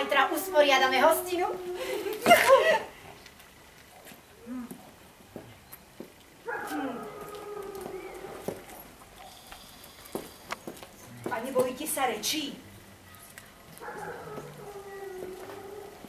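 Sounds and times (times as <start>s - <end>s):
dog whining: 13.8s - 16.0s.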